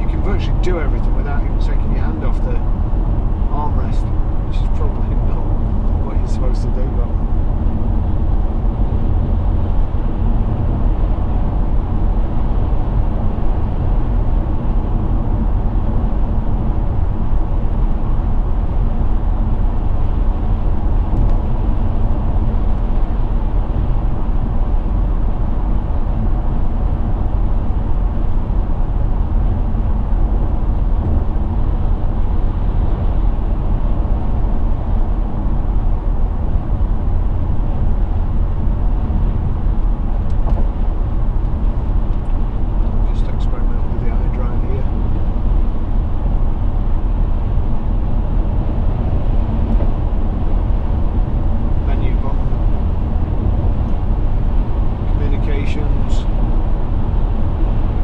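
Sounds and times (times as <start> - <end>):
car interior road noise: 0.0 - 58.0.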